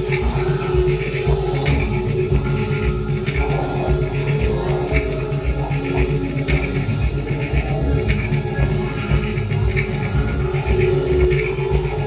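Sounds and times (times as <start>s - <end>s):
pulsing low bass: 0.0s - 12.0s.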